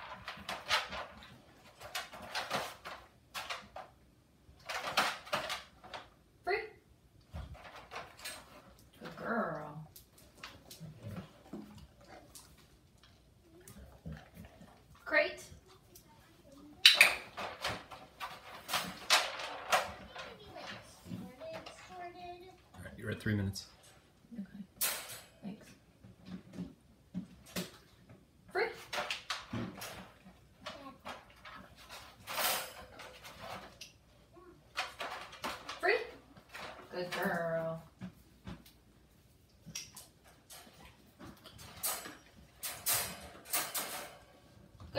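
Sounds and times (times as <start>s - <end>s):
dog shifting in wire crate: 17.2s - 20.9s, 31.1s - 33.8s, 40.5s - 44.3s.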